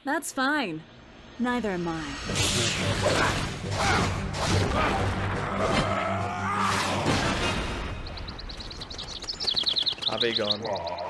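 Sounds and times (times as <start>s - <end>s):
small birds chirping: 7.7s - 11.0s.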